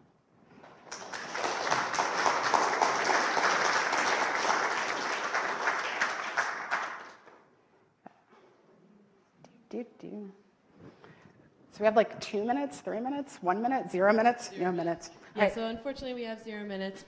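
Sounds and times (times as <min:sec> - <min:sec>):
audience applauding: 0:00.6 - 0:07.4.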